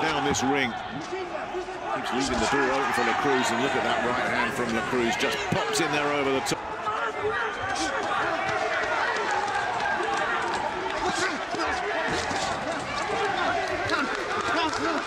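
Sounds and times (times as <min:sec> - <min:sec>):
men shouting: 0:01.3 - 0:15.0.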